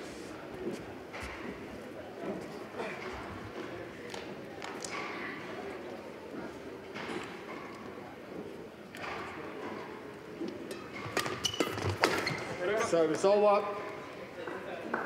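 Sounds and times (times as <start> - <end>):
murmur of voices echoing: 0.0 - 11.1, 12.4 - 15.0
shoes squeaking on court floor: 9.7 - 14.6.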